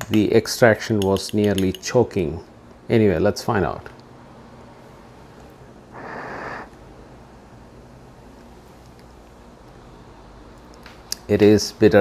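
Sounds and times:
faint steady hum: 0.0s - 12.0s
slurping sip: 6.0s - 6.7s.

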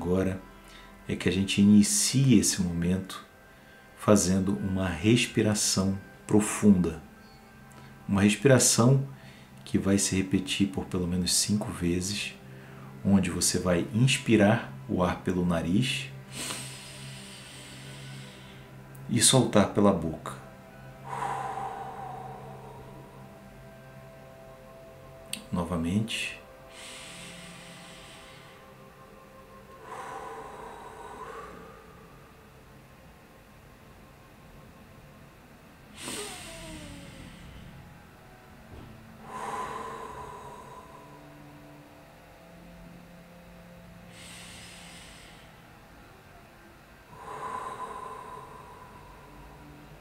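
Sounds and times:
soft breath through the nose: 16.2s - 18.9s, 20.5s - 24.5s, 26.6s - 32.5s, 44.0s - 46.2s, 47.1s - 50.0s.

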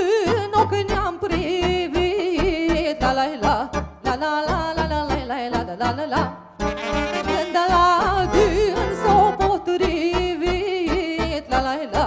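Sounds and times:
accordion keyboard and bass backing: 0.0s - 12.0s
ornamented lead melody: 6.6s - 11.2s.

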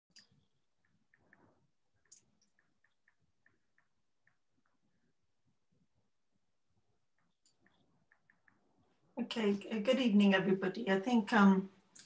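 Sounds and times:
faint small clicks: 0.1s - 4.8s.

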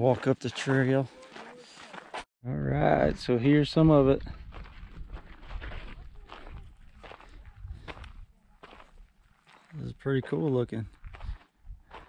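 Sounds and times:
footsteps on dirt trail: 0.0s - 2.3s, 3.6s - 12.0s.

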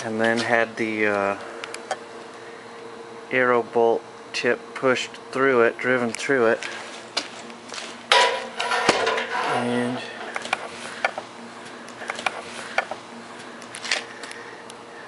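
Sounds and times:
metal tools clattering: 8.1s - 9.8s.

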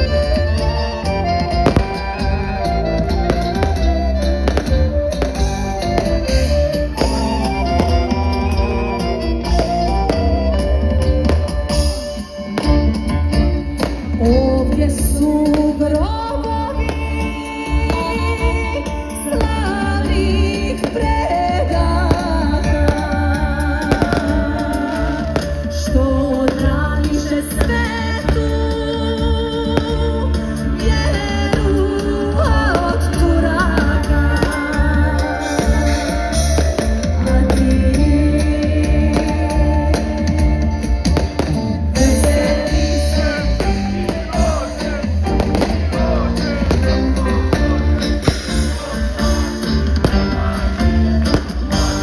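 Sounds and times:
live concert music with singing: 0.0s - 52.0s.

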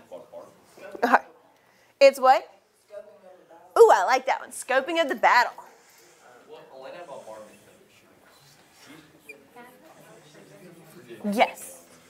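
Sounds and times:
students talking quietly: 0.0s - 12.0s.

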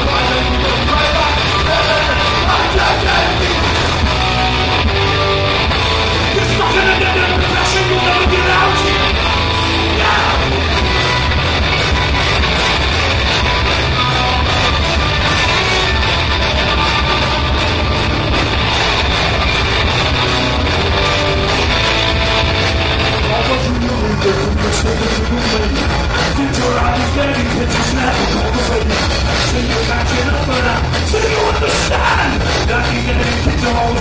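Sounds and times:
person singing: 0.0s - 4.1s, 6.3s - 9.2s, 9.8s - 10.9s
distorted electric guitars: 0.0s - 34.0s
drum kit with rapid cymbal hits: 0.0s - 34.0s.

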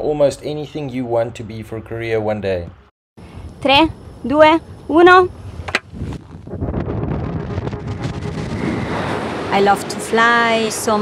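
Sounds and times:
wind buffeting microphone: 3.3s - 11.0s.

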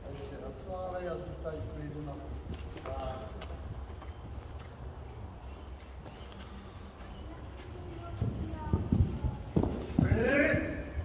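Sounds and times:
horse hoofbeats on sand: 6.0s - 11.0s.

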